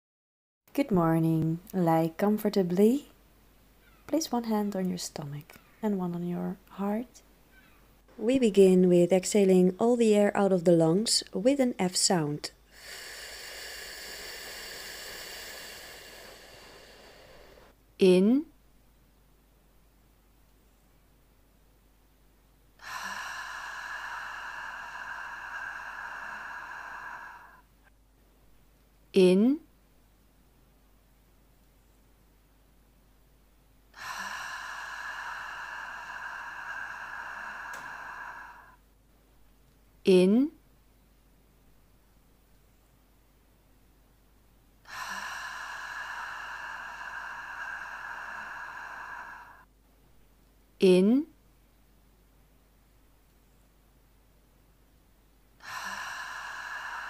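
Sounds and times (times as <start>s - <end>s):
slow breathy exhalation: 12.6s - 17.8s, 22.8s - 27.9s, 33.9s - 38.8s, 44.8s - 49.7s, 55.6s - 57.0s.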